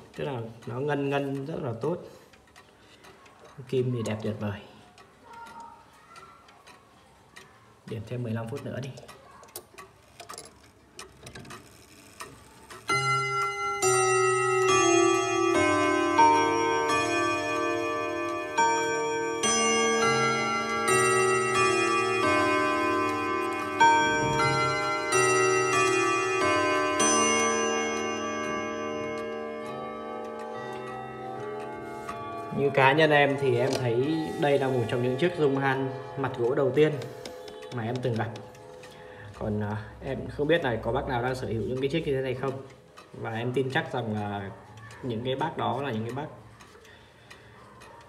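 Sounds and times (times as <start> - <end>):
faint clicks: 2.3 - 12.9, 41.3 - 48.0
wall clock chiming a melody: 11.7 - 48.0.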